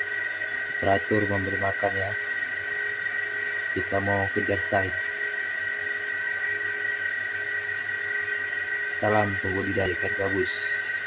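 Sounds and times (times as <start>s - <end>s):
high-pitched whine: 0.0s - 11.0s
low hum: 0.0s - 11.0s.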